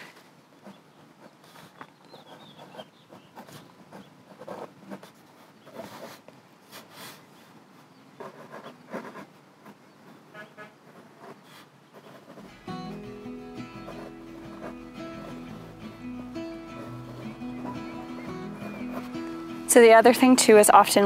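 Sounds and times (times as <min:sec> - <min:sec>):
pen scratching on paper: 0:00.1 - 0:07.4, 0:08.2 - 0:19.8.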